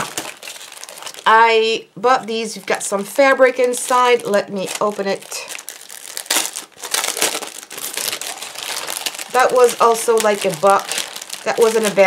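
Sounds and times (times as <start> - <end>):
cellophane crinkling: 0.0 - 1.8, 2.4 - 12.0.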